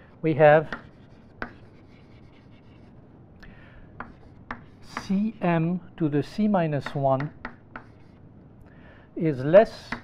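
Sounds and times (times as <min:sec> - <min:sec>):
chalk scratching on blackboard: 0:00.6 - 0:02.9, 0:04.0 - 0:05.6, 0:06.8 - 0:08.2
chalk tapping on board: 0:00.6 - 0:02.9, 0:04.0 - 0:05.2, 0:06.8 - 0:08.2.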